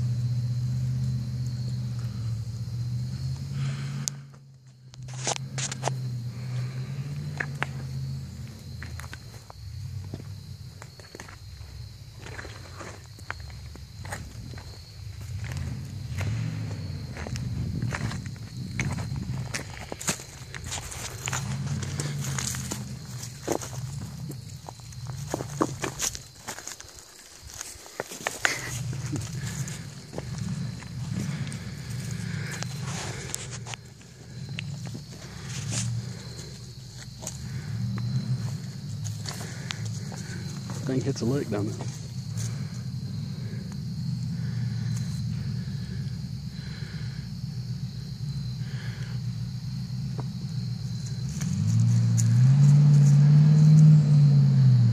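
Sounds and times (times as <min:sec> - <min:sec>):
small off-road engine droning: 0:00.0 - 0:54.9.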